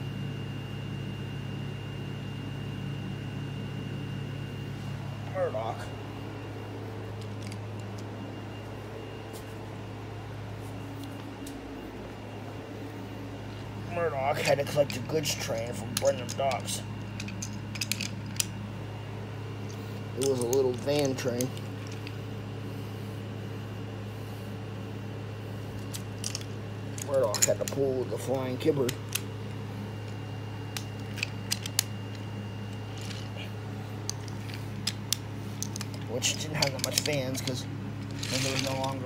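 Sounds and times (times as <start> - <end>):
low room hum: 0.0 - 39.0.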